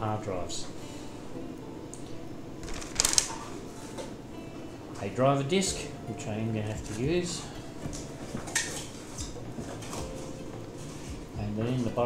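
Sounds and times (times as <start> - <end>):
packaging crinkling: 2.6 - 3.6.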